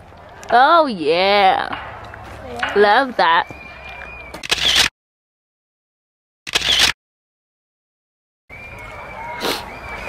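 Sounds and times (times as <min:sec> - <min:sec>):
short sharp noise burst: 0:04.4 - 0:04.9, 0:06.5 - 0:07.0.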